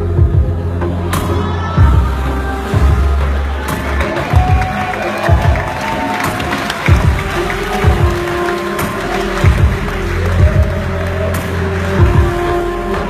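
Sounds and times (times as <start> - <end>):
synthesized electronic music: 0.0 - 13.0.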